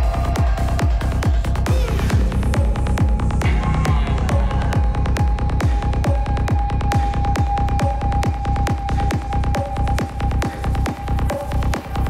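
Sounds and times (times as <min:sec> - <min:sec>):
kick drum: 0:00.0 - 0:12.0.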